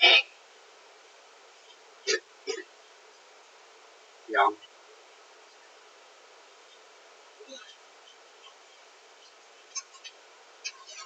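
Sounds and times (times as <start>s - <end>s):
person hiccuping: 0.0s - 0.3s, 2.1s - 2.7s.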